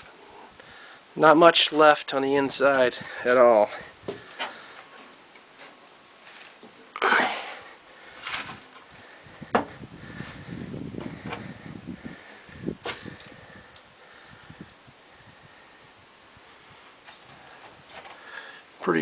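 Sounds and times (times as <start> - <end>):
shuffling noise: 4.0 - 6.8.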